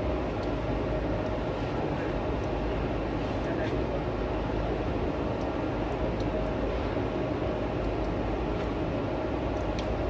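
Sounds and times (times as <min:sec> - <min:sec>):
steady low noise: 0:00.0 - 0:10.0.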